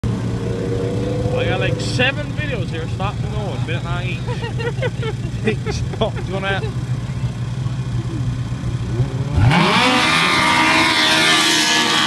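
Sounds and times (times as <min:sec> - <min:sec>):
snowmobiles idling: 0:00.2 - 0:12.0.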